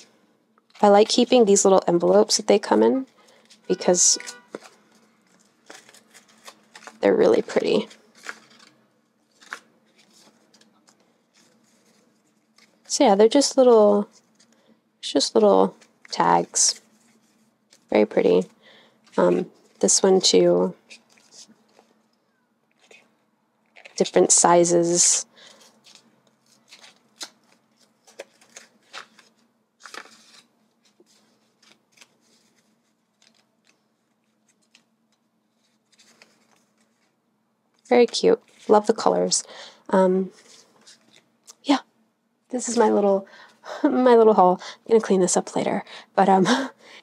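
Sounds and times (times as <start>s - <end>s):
paper tags rustling: 0.7s - 13.1s
paper rustling: 2.0s - 13.0s, 15.7s - 20.1s, 20.8s - 22.1s, 23.7s - 24.2s, 25.4s - 37.2s, 40.3s - 41.3s.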